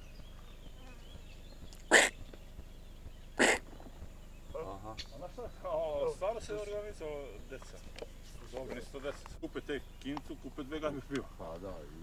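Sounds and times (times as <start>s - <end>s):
person sneezing: 1.9s - 2.1s, 3.4s - 3.6s.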